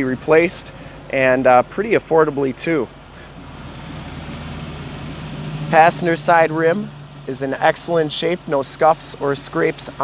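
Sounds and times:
low steady hum: 0:00.0 - 0:10.0
vehicle rushing: 0:00.0 - 0:10.0.

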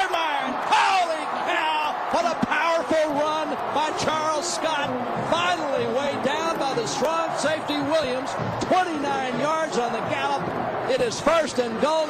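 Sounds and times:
faint crowd noise: 0:00.0 - 0:12.0
man talking: 0:00.0 - 0:12.0.

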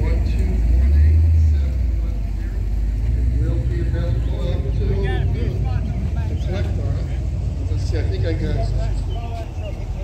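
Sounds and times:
people talking indistinctly: 0:00.0 - 0:10.0
steady low rumble: 0:00.0 - 0:10.0.

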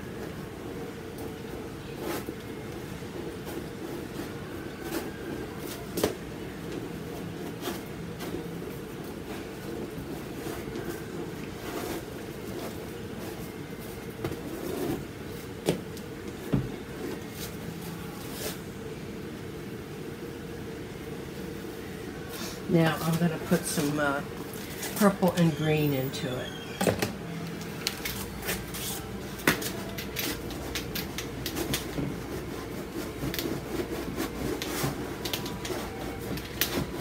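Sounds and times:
low room hum: 0:00.0 - 0:37.0
paintbrush scrubbing canvas: 0:31.5 - 0:37.0.

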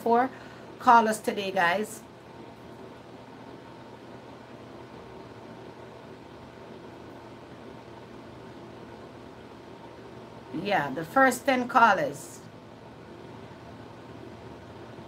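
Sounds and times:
faint hum: 0:00.0 - 0:15.0
steady background hiss: 0:00.0 - 0:15.0.

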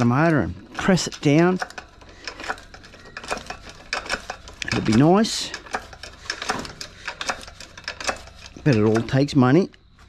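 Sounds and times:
metallic clicks of pump handle: 0:00.0 - 0:09.8.

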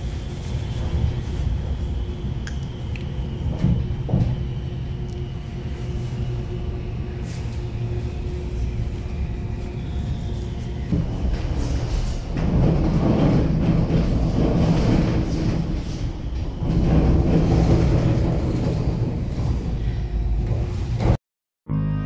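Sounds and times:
tram rumble: 0:00.0 - 0:21.2.

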